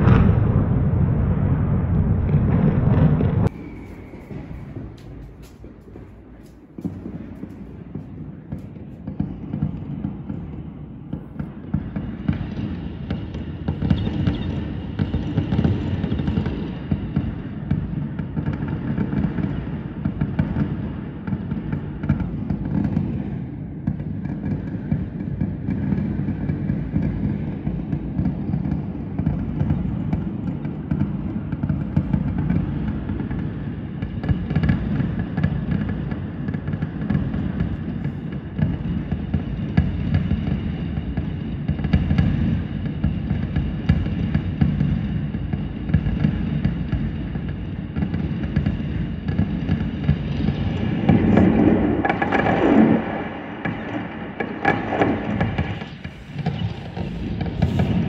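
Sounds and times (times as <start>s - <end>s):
fireworks bangs and crackles: 0.0s - 58.0s.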